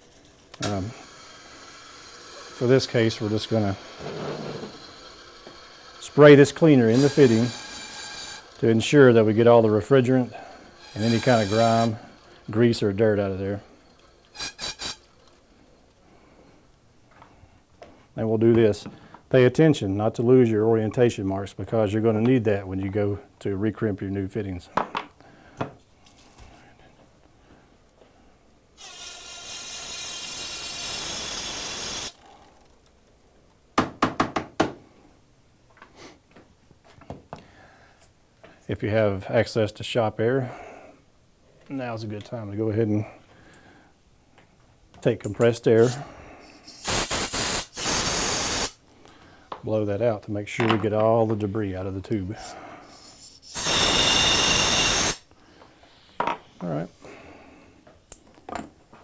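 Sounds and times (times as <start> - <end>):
compressed air rushing through hose: 5.9 - 9.2, 10.0 - 12.2, 14.3 - 15.1, 45.8 - 48.8, 52.9 - 55.3
aerosol spray hiss: 10.8 - 12.0, 14.3 - 15.0, 46.6 - 48.8
thin air whistle: 14.3 - 15.0, 52.9 - 55.2.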